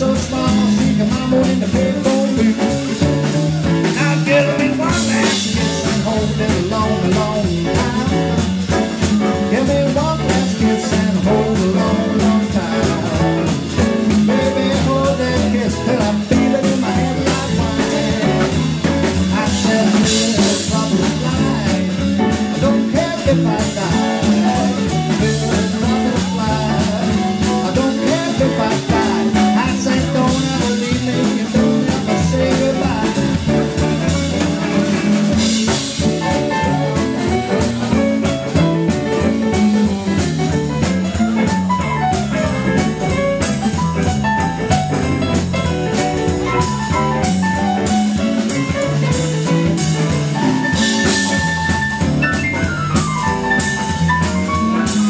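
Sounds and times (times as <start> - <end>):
drum kit steady beat: 0.0 - 55.0
electric bass: 0.0 - 55.0
electric guitar: 0.0 - 55.0.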